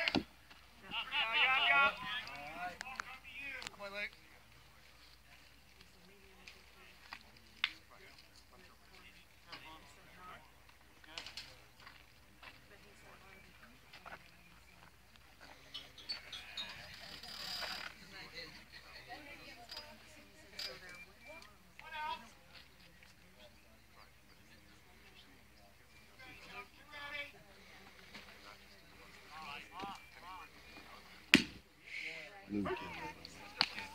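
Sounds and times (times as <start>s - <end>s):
distant voices and chatter: 0.0s - 33.9s.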